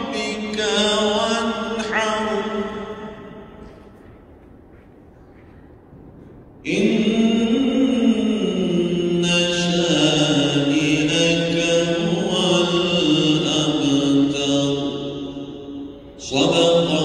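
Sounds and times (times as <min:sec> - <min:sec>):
man chanting melodically: 0:00.0 - 0:03.6, 0:06.7 - 0:17.0.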